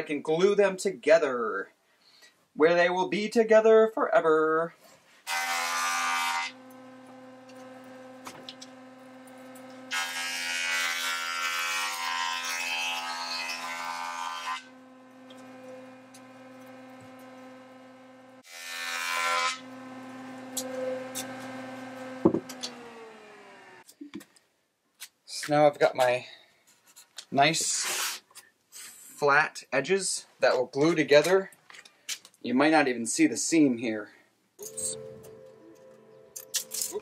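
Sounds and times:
jointer rasping cut on wood: 5.2 - 23.9
jointer motor hum: 6.3 - 10.4, 14.7 - 18.4, 19.6 - 23.9.

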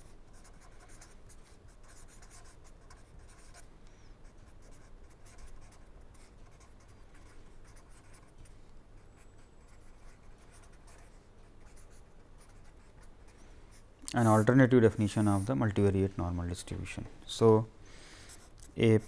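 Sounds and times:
pen scratching on paper: 0.0 - 3.6, 4.4 - 8.4, 9.2 - 15.6.

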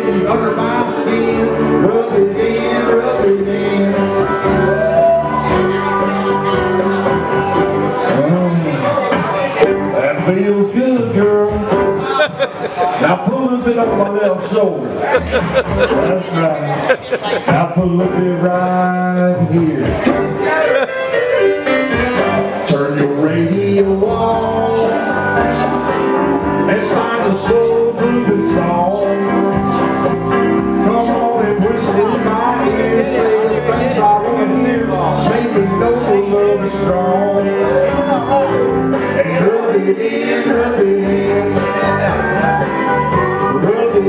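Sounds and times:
man's voice: 0.0 - 4.4, 8.0 - 21.1, 22.6 - 25.7, 26.6 - 42.6, 43.4 - 44.0
man singing into microphone: 0.0 - 6.2, 8.0 - 20.9, 22.5 - 44.0
karaoke backing track: 0.0 - 44.0.

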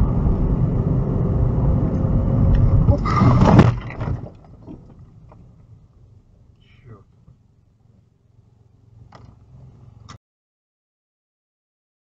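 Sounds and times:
car interior rumble: 0.0 - 10.2.

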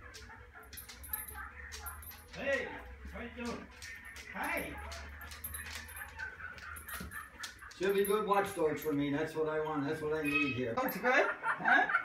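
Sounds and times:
dog panting: 0.0 - 9.0
dog claws clicking on wood floor: 0.0 - 9.1.

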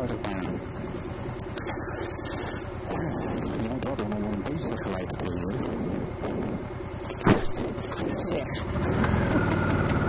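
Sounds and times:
person talking: 0.0 - 0.6, 2.8 - 5.8, 7.8 - 8.7
motorcycle engine idling: 8.6 - 10.0.

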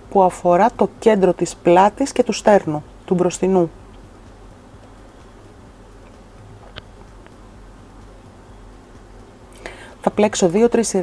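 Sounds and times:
person speaking: 0.0 - 3.9, 9.6 - 11.0
steady low hum: 0.0 - 11.0
intake of breath: 9.6 - 10.0.

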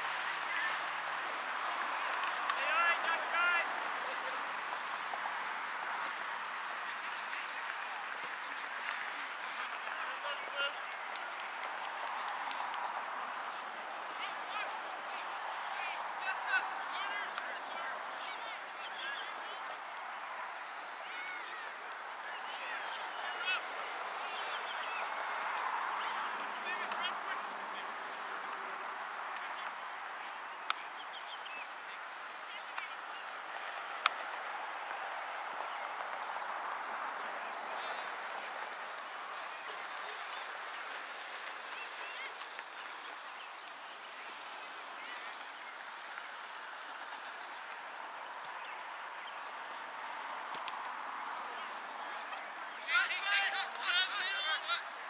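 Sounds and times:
distant players shouting: 0.2 - 40.8, 44.0 - 55.0.

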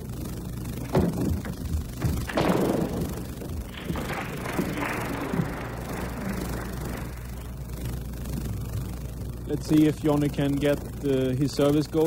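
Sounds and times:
crowd noise: 2.9 - 7.8.

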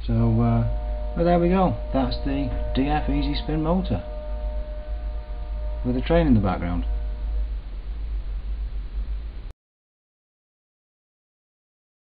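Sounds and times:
train rumbling: 0.0 - 9.5.

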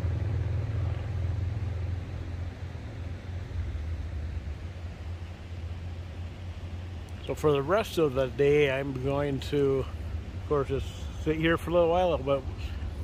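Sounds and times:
motorcycle engine rumble: 0.0 - 13.0.

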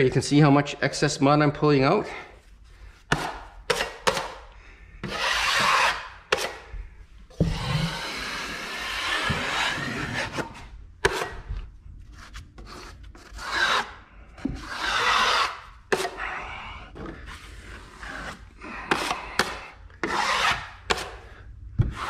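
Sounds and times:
trowel scraping along wall: 5.0 - 6.7, 7.3 - 16.4, 17.2 - 22.0.

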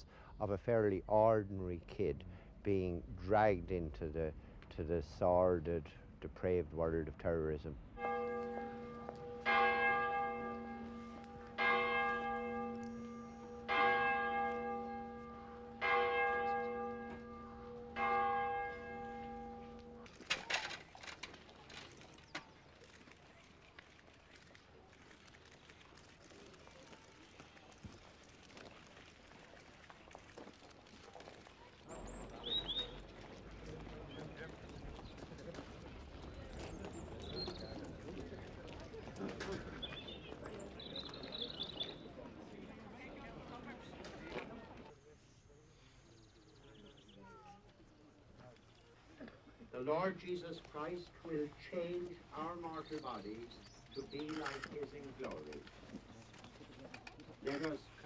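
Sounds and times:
church bell tolling: 8.0 - 20.1
bird chirp: 31.9 - 33.2, 36.5 - 37.9, 39.7 - 42.1, 51.8 - 55.1.

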